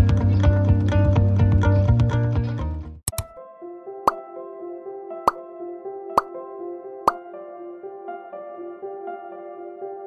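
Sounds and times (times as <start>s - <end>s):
soft gentle background music: 3.1s - 10.0s.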